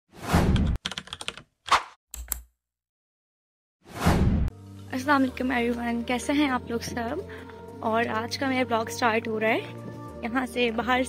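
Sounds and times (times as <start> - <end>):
computer keyboard typing: 0.6 - 1.5
whoosh: 3.9 - 4.5.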